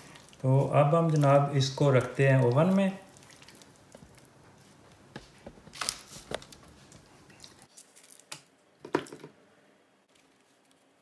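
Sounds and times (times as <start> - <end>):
wet squishes: 0.0 - 8.5.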